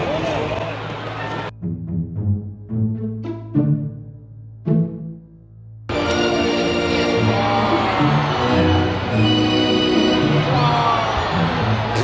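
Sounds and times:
music with sustained chords: 1.6 - 10.8.

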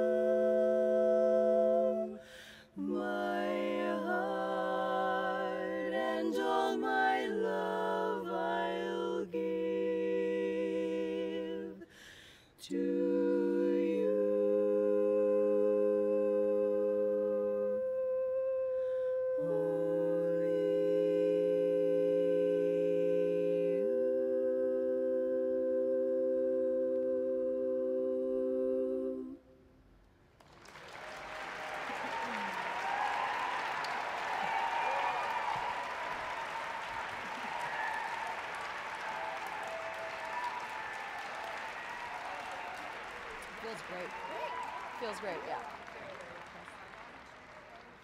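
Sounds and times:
women singing in close harmony: 0.0 - 12.0, 12.6 - 29.4
audience applause: 30.4 - 48.0.

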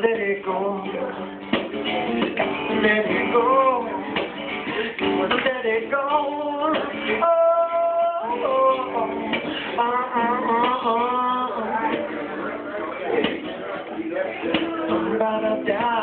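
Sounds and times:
acoustic guitar: 0.0 - 16.0
man singing: 0.0 - 16.0.

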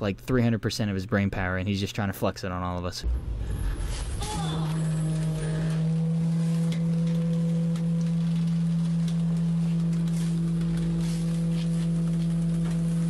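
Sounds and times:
garbage truck humming: 3.1 - 13.0.

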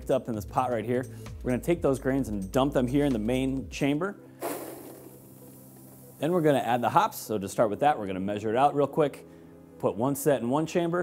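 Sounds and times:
grain pouring with rushing hiss: 4.4 - 7.1.

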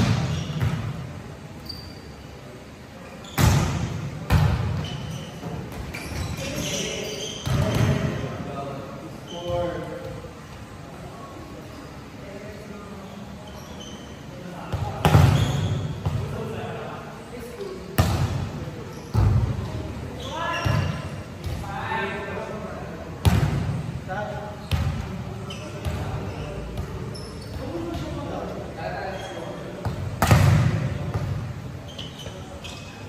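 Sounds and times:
volleyball smacks: 30.2 - 30.8.

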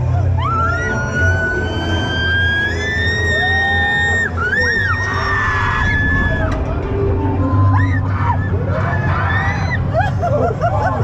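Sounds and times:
low rumble of fairground ride: 0.0 - 11.0.

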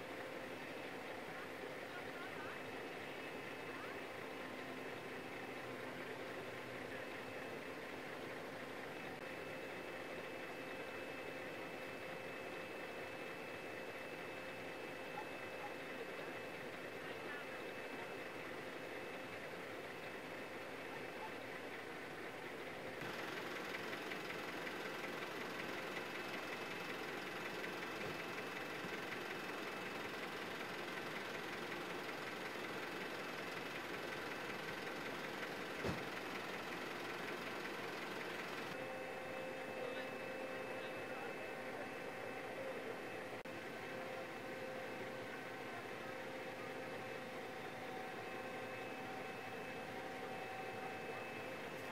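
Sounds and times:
vehicle engines idling: 0.0 - 51.9.

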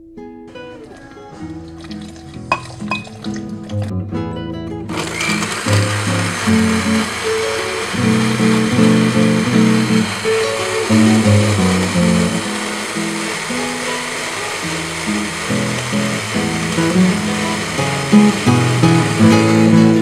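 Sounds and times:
blender running: 4.9 - 20.0.

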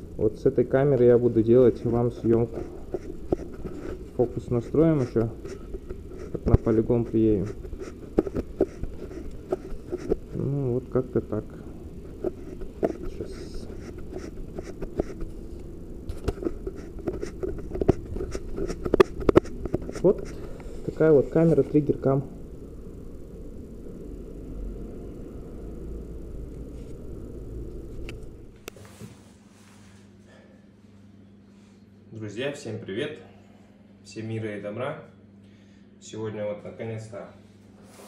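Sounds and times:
low steady rumble: 0.0 - 28.7.

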